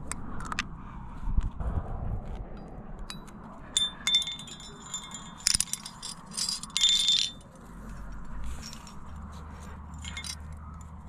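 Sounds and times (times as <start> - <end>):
carabiners clinking: 3.1 - 11.0.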